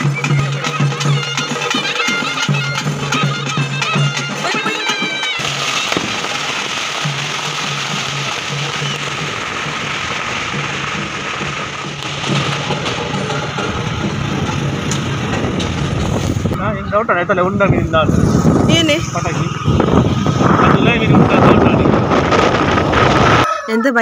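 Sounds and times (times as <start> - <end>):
music playing: 0.0 - 21.9
outdoor noise: 0.0 - 24.0
deep rumbling noise: 5.2 - 23.5.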